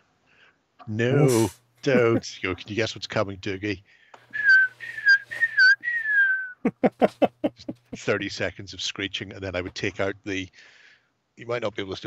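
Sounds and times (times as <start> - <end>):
person whistling: 4.3 - 6.7.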